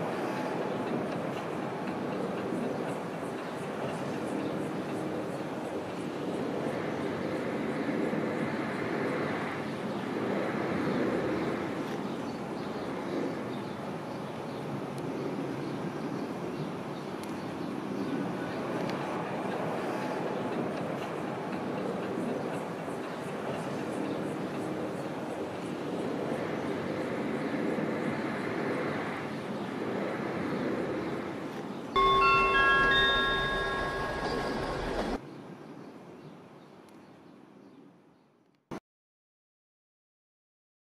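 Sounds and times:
funicular car rumbling on track: 0.0s - 14.4s, 15.2s - 35.2s
chime ringing notes: 32.0s - 35.2s.

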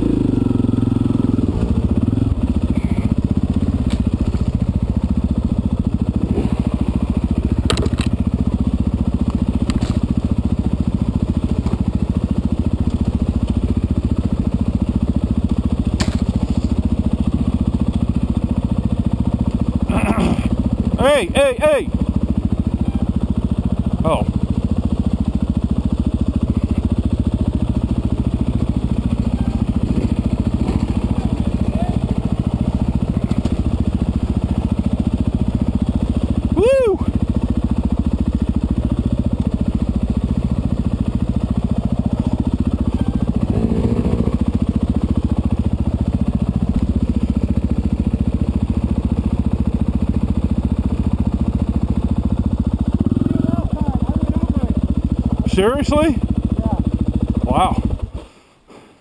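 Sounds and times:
dirt bike engine running: 0.0s - 58.4s.

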